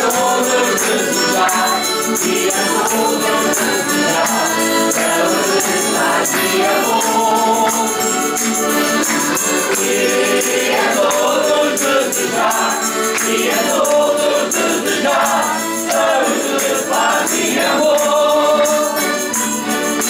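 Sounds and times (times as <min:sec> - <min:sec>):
accordions: 0:00.0 - 0:20.0
acoustic guitars: 0:00.0 - 0:20.0
men singing folk song: 0:00.0 - 0:20.0.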